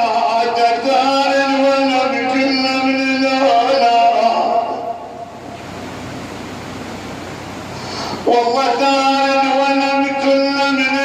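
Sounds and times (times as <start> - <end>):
electric fan rushing air: 0.0 - 11.0.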